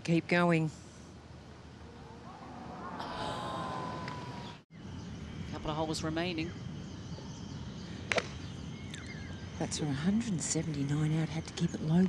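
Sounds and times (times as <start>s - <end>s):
faint outdoor ambience: 0.0s - 12.0s
golf club striking ball: 8.1s - 8.4s.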